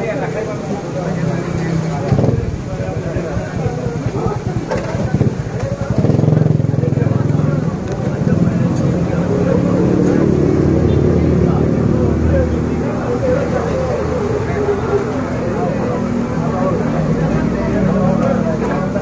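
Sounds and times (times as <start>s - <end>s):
engine droning: 0.0s - 19.0s
people's voices: 0.0s - 19.0s.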